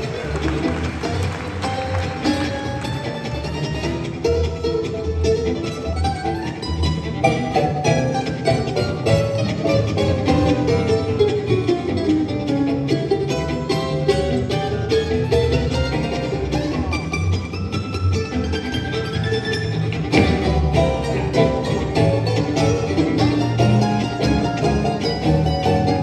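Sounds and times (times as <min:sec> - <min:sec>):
banjo picking: 0:00.0 - 0:26.0
bass: 0:00.0 - 0:26.0
fiddle: 0:00.0 - 0:26.0
guitar: 0:00.0 - 0:26.0
mandolin picking: 0:00.0 - 0:26.0.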